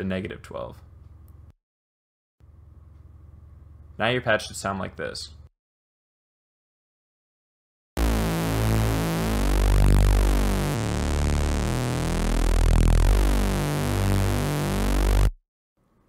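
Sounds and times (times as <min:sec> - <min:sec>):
low synth bass notes: 0:08.0 - 0:15.4.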